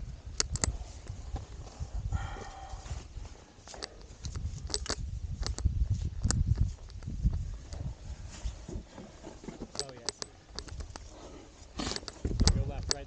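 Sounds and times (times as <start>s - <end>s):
wind buffeting microphone: 0.0s - 8.9s, 10.6s - 13.0s
clicks and scrapes on rock: 0.3s - 1.9s, 2.5s - 13.0s.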